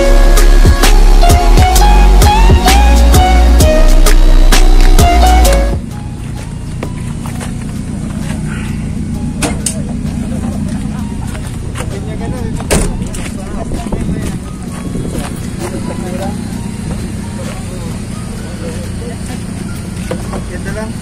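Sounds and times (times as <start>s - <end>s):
loud music: 0.0s - 6.9s
car engine idling: 0.0s - 21.0s.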